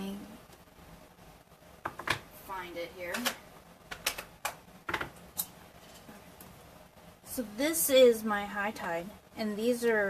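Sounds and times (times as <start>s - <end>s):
clicks and taps of craft supplies: 3.1s - 5.2s.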